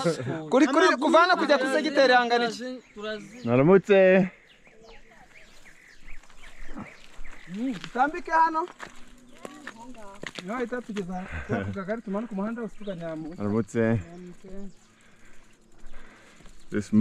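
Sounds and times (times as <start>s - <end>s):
people talking: 9.3s - 14.7s.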